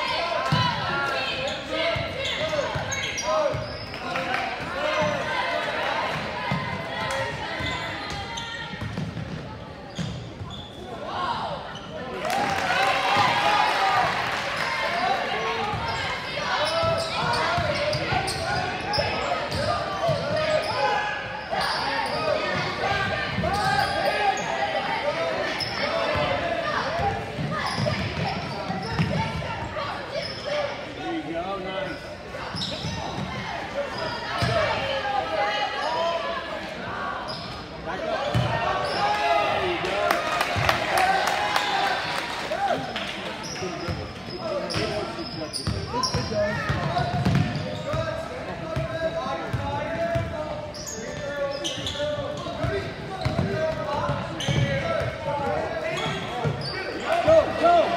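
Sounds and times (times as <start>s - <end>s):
echoing chatter and shouts: 0.0s - 57.9s.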